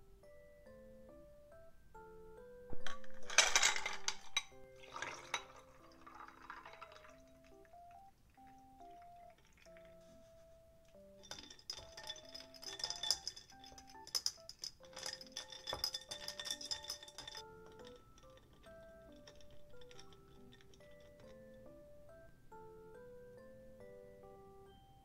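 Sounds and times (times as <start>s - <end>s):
soft background music: 0.0s - 25.0s
ice cubes clattering into glass: 2.8s - 7.7s, 11.2s - 21.4s
spoon stirring ice in glass: 2.8s - 10.0s, 11.2s - 21.5s.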